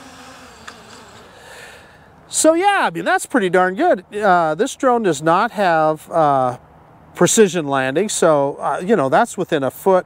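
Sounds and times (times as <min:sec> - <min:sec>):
quadcopter propellers buzzing: 0:00.0 - 0:02.0.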